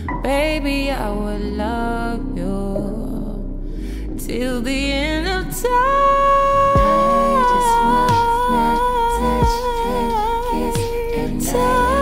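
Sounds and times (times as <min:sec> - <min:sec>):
woman singing: 0:00.0 - 0:03.4, 0:04.2 - 0:12.0
slow backing track: 0:00.0 - 0:12.0
deep kick drum: 0:06.8 - 0:07.0, 0:09.4 - 0:09.6.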